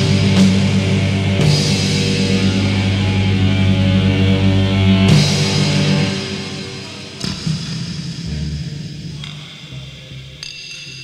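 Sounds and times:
drum hits: 0.0s - 8.1s
heavy metal chord: 0.0s - 9.2s.

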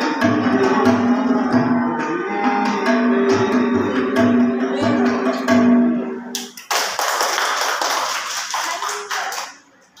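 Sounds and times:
audience applauding: 6.3s - 9.7s.

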